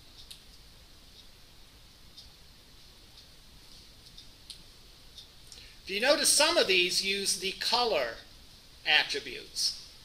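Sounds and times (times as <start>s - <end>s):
man's voice: 5.9s - 8.2s, 8.9s - 9.8s.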